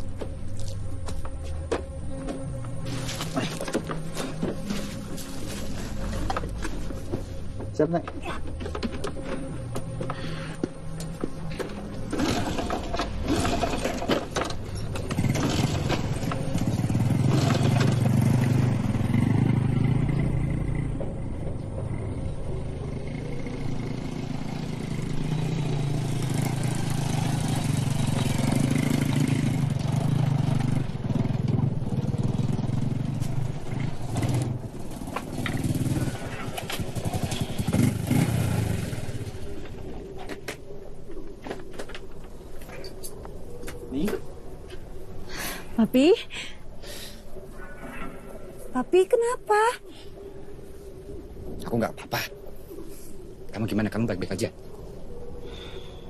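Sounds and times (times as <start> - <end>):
scooter engine droning: 8.5 - 40.7.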